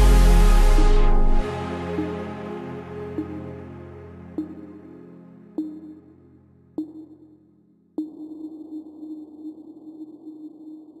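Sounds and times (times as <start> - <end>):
sharp electronic hit: 0.0 - 1.5
steady low drone: 0.0 - 7.4.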